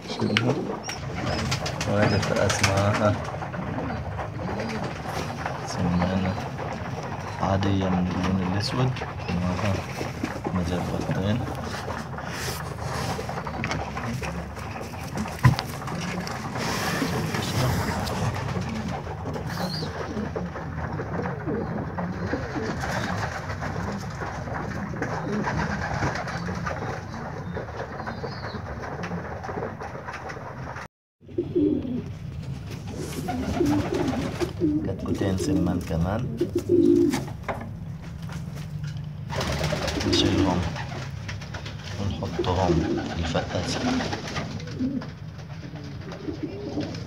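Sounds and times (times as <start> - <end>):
pigeons cooing: 0.0 - 47.0.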